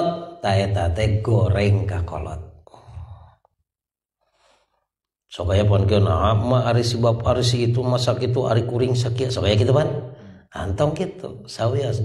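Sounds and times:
man speaking: 0.0s - 3.0s, 5.3s - 12.0s
faint breath: 4.2s - 4.9s, 10.1s - 10.5s.

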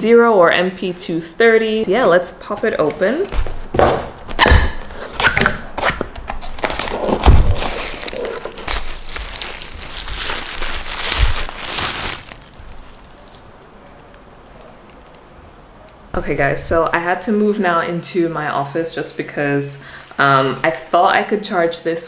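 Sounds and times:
cardboard box knocks and scrapes: 3.3s - 4.4s
plastic wrapping crinkling: 6.1s - 15.3s.

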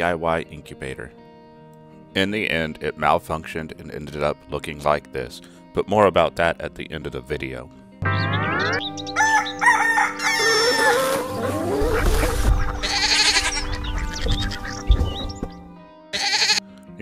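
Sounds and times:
background music: 0.0s - 17.0s
rooster crowing: 9.1s - 11.5s.

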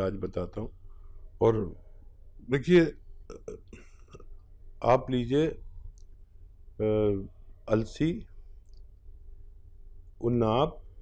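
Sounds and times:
man talking: 0.0s - 0.7s, 1.4s - 1.8s, 2.4s - 3.9s, 4.8s - 5.6s, 6.8s - 8.3s, 10.2s - 10.8s.

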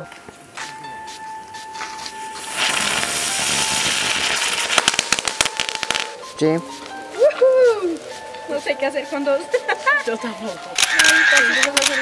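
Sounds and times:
sparklers crackling: 0.0s - 12.0s
sparklers fizzing hiss: 0.0s - 12.0s.

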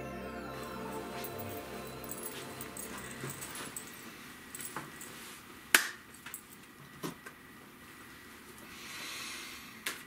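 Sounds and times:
soft music: 0.0s - 4.7s.

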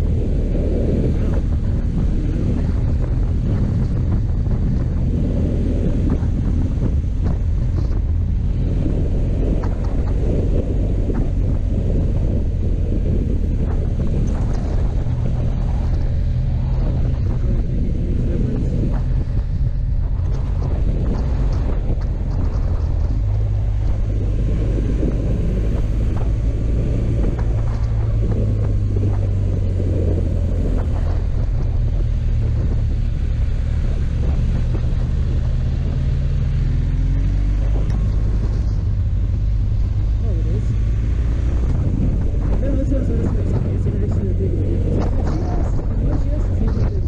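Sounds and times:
motorcycle engine running: 0.0s - 47.0s.

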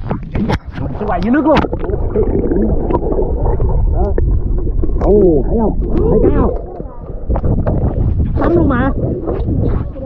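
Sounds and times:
muffled underwater river gurgle: 0.0s - 10.0s.

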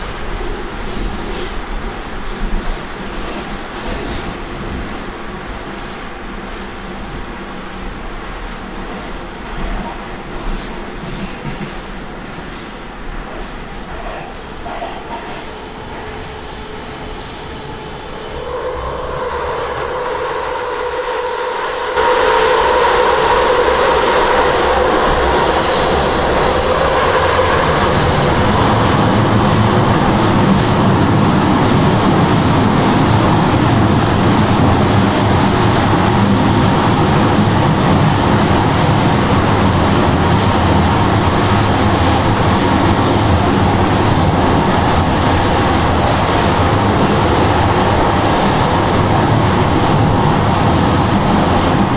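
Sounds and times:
rumble of wheels on rails: 0.0s - 51.9s.

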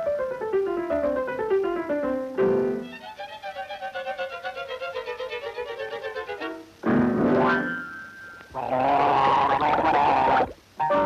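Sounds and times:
bubbly gargling cartoon laugh: 8.6s - 10.6s.

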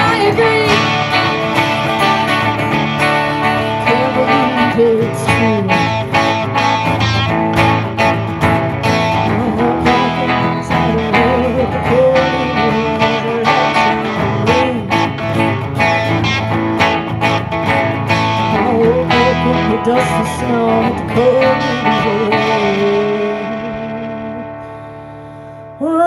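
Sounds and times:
lead guitar with bending notes: 0.0s - 26.0s
strummed guitar chords: 0.0s - 26.0s.

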